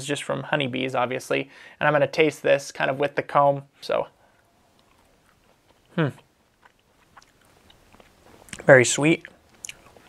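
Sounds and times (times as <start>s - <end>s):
mouth clicks of chewing: 4.7s - 10.0s
person humming: 6.0s - 6.2s.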